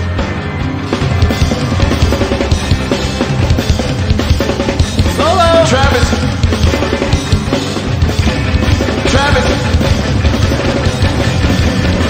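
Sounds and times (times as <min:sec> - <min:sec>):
rock drum kit played fast: 0:00.0 - 0:12.0.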